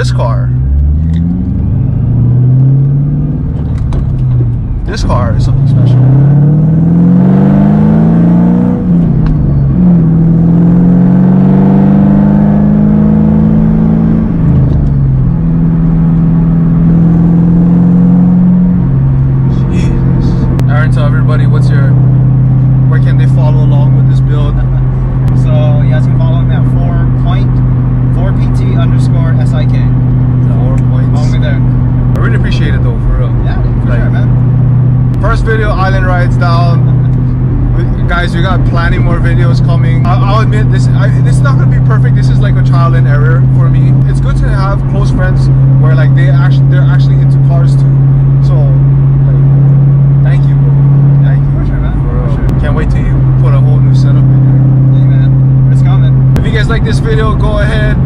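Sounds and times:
car engine accelerating through gears: 0.0s - 58.0s.

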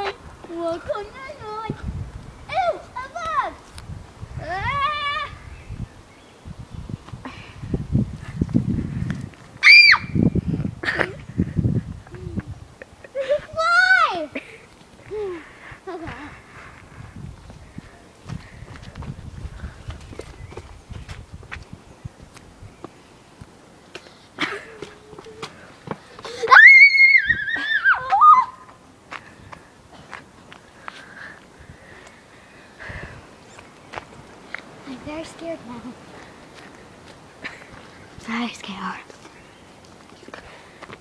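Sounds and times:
girl screaming high-pitched: 4.4s - 5.4s, 9.6s - 10.2s, 13.2s - 14.3s, 26.3s - 28.7s
footsteps on grass: 33.5s - 41.0s.

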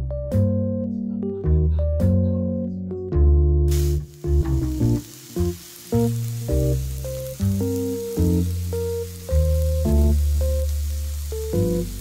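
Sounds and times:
background music: 0.0s - 12.0s
meat sizzling on a grill plate: 3.7s - 12.0s.

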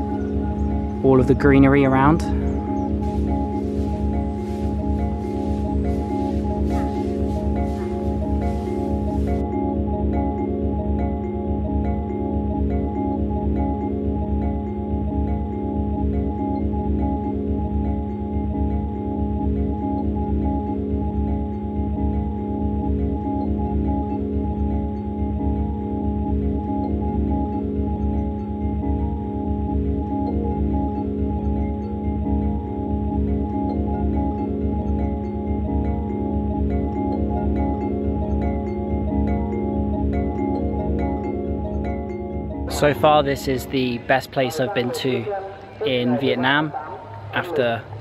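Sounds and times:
music with sustained tones and low beat: 0.0s - 48.0s.

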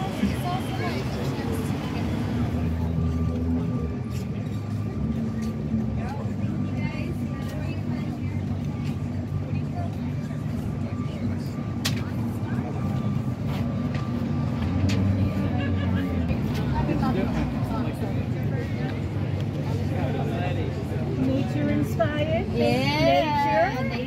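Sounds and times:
road traffic hum: 0.0s - 24.0s.

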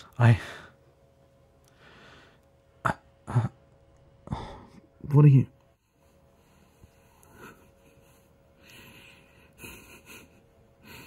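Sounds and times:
man speaking: 0.0s - 0.6s, 5.0s - 5.5s.

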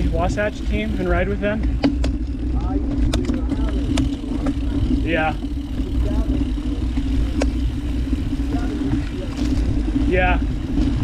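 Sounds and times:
bike freehub buzzing: 0.0s - 11.0s
bike rattling over bumps: 0.0s - 11.0s
tyres rolling over dirt: 0.0s - 11.0s.

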